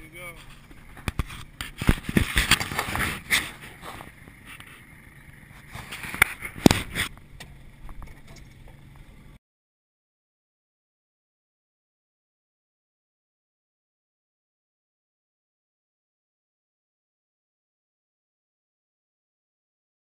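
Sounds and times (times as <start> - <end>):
knocks and scraping on boat: 0.0 - 9.2.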